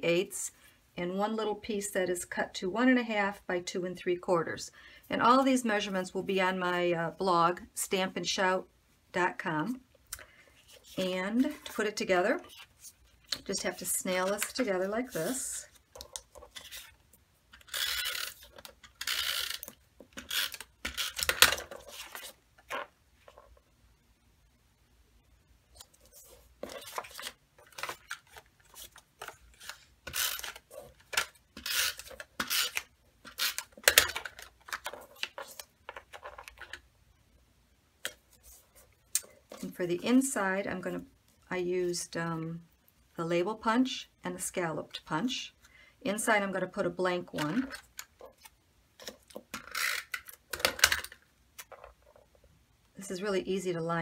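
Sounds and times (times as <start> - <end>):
tape runner scratchy rasps: 17.5 - 21.5, 29.6 - 30.8.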